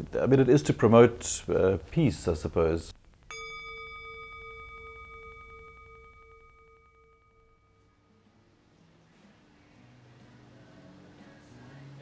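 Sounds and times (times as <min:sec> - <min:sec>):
metal singing bowl ringing: 0:03.3 - 0:08.3.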